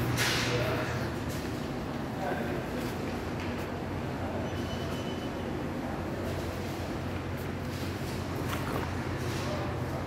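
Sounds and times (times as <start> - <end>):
low rumbling supermarket noise: 0.0 - 10.0.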